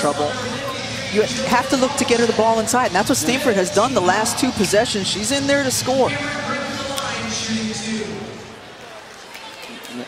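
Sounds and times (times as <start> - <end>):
commentator's voice: 0.0 - 8.6
arena crowd murmur: 0.0 - 10.0.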